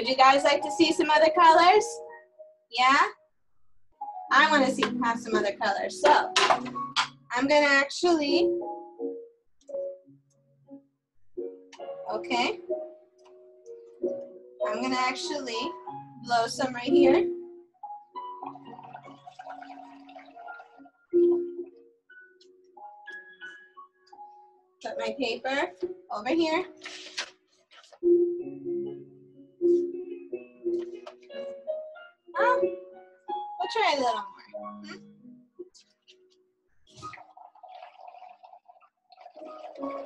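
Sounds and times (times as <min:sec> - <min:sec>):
blowing bubbles through a straw: 0:18.5 - 0:21.5, 0:36.9 - 0:40.0.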